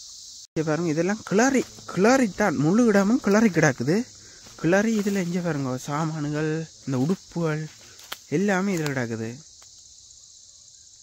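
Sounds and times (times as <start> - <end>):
high-pitched insect chorus: 0.0 - 11.0
man talking: 0.6 - 9.4.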